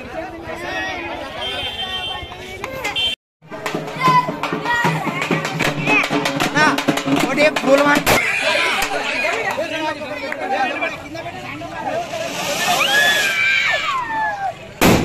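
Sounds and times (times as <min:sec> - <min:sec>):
crowd voices: 0:00.0 - 0:15.0
street band playing: 0:01.4 - 0:15.0.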